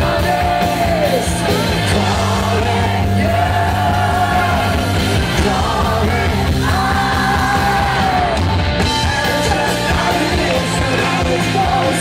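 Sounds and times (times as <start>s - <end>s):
man singing into microphone: 0.0s - 8.4s, 9.0s - 12.0s
live rock band: 0.0s - 12.0s.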